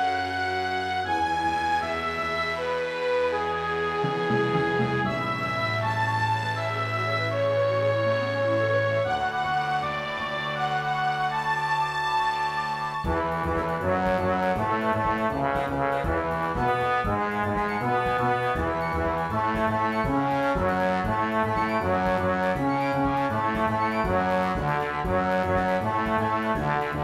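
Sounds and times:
symphony orchestra with brass: 0.0 - 27.0.

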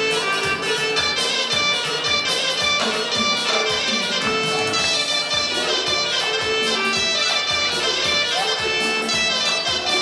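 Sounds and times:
steady drum beat: 0.0 - 10.0
wind instrument melody: 0.0 - 10.0.

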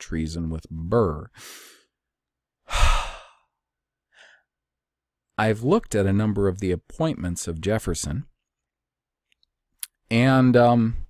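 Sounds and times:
man sighing: 2.6 - 3.5.

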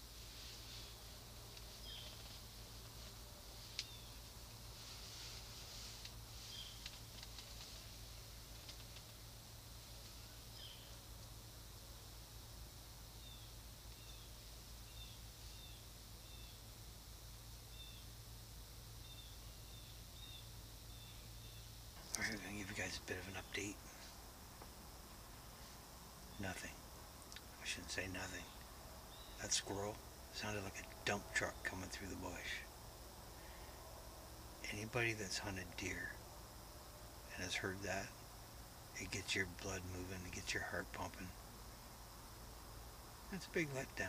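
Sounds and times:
small birds chirping: 0.0 - 11.4, 13.1 - 16.7, 17.6 - 18.2, 18.9 - 24.8, 25.4 - 33.8.

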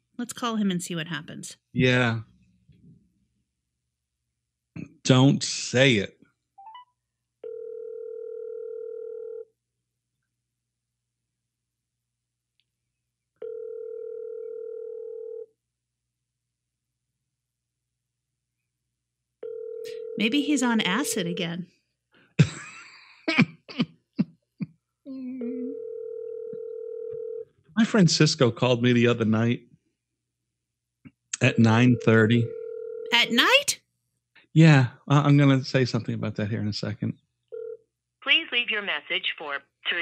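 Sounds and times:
telephone ringback tone: 7.4 - 9.5, 13.4 - 15.5, 19.4 - 21.6, 25.4 - 27.4, 31.5 - 33.6.

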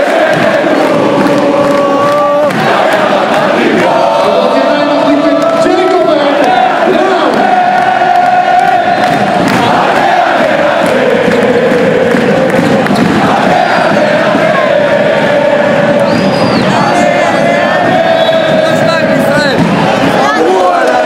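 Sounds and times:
crowd chanting and singing: 0.0 - 21.0.

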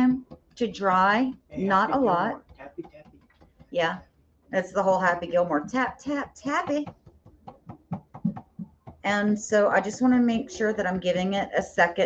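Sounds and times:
paint brush tapping on plastic stencil: 2.4 - 3.9, 5.8 - 10.4.

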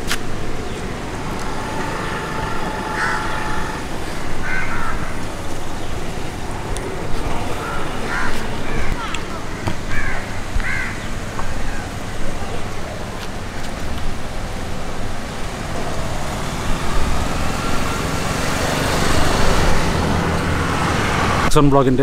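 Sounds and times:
held tone: 0.0 - 9.9
road traffic rumble: 0.0 - 22.0
crows cawing: 0.9 - 11.9.

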